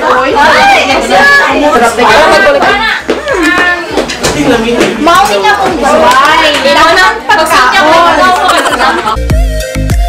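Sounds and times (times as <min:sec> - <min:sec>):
chatter: 0:00.0 - 0:09.2.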